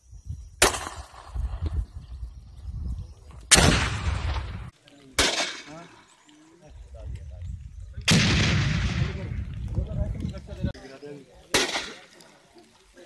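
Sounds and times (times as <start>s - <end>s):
rifle gunshots with echo: 3.5s - 5.9s, 8.1s - 9.4s.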